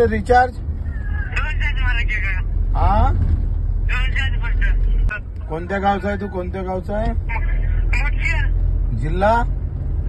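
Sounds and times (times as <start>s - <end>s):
car interior rumble: 0.0s - 10.0s.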